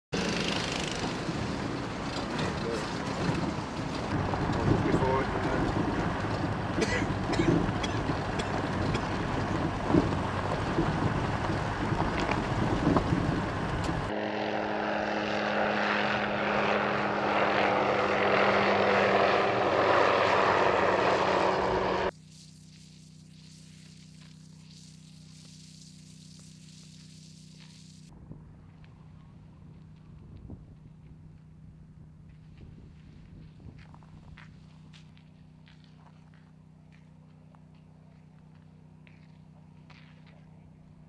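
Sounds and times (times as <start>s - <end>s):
engine and road rumble inside vehicle: 0.2s - 14.2s, 18.1s - 22.2s
rotor rushing noise: 0.2s - 28.1s.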